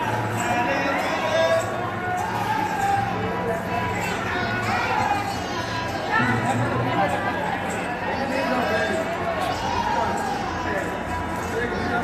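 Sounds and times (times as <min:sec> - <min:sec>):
visitors and children talking: 0:00.0 - 0:12.0.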